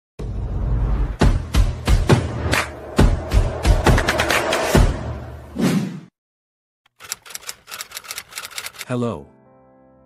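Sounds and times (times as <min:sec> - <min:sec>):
typewriter keys clacking: 0:06.9 - 0:08.9.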